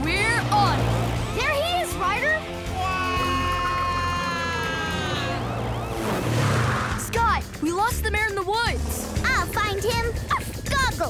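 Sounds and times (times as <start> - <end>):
background music with pulsing beat: 6.9 - 11.0.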